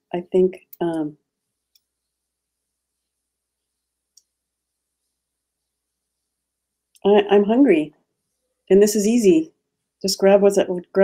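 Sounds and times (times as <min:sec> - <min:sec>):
faint room hiss: 0:00.0 - 0:11.0
woman's voice: 0:00.1 - 0:01.2, 0:07.0 - 0:07.9, 0:08.7 - 0:11.0.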